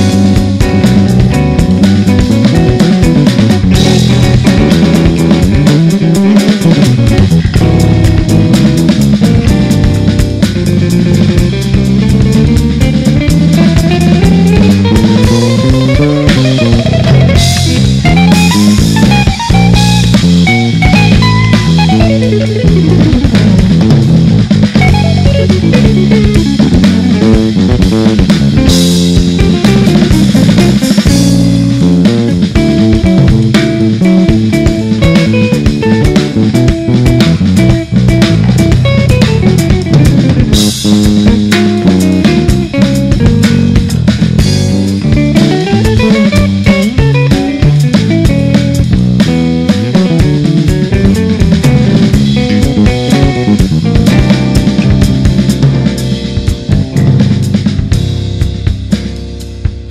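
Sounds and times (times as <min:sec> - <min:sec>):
electric guitar fast lines: 0:00.0 - 0:58.8
drum kit: 0:00.0 - 0:59.9
walking electric bass: 0:00.0 - 0:59.9.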